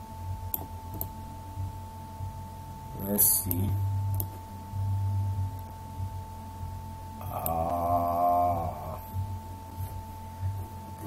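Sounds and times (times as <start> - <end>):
faint electrical whine: 0.0 - 11.0
man humming: 7.2 - 9.3.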